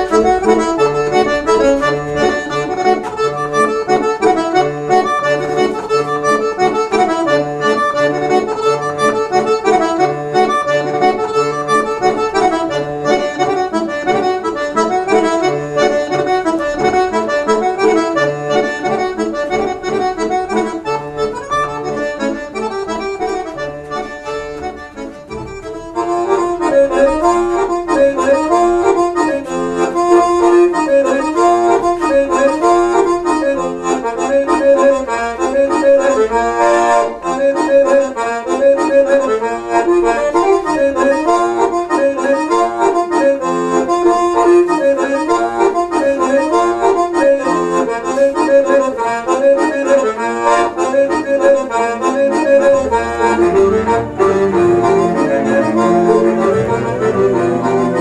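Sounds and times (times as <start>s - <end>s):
accordion music: 0.0s - 58.0s.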